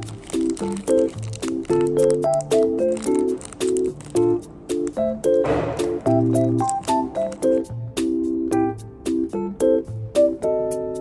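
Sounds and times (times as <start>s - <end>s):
light instrumental music: 0.0s - 11.0s.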